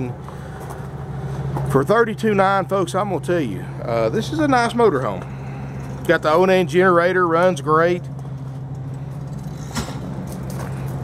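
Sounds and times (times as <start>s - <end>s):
generator humming: 0.0s - 11.0s
footstep on gravel: 8.3s - 11.0s.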